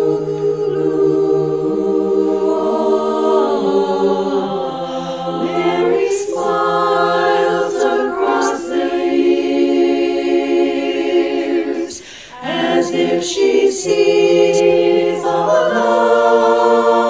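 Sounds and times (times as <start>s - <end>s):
women's chorus singing: 0.0s - 17.0s.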